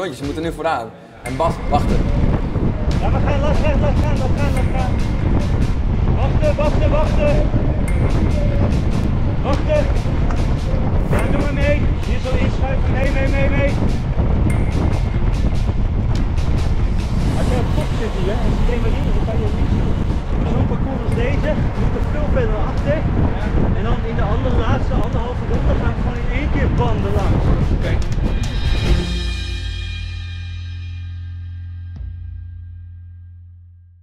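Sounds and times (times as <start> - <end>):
voices: 0.0 - 5.2, 6.1 - 14.6, 17.4 - 28.2
wind rushing over microphone: 1.2 - 29.4.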